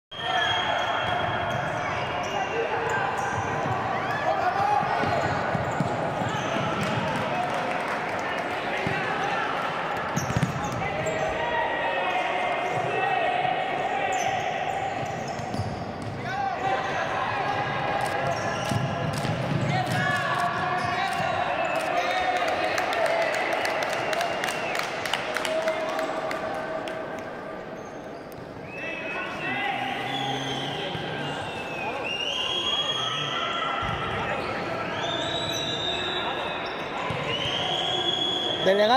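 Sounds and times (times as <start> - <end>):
ball bouncing on wooden court: 4.8 - 7.2, 10.2 - 11.2.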